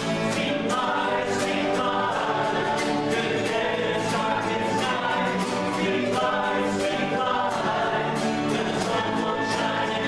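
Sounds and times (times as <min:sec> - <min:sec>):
choir singing pop song: 0:00.0 - 0:10.0
strummed acoustic guitars: 0:00.0 - 0:10.0.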